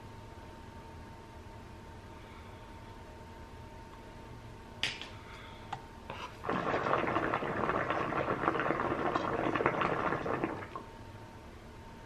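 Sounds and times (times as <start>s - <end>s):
hookah water bubbling: 6.2s - 10.9s.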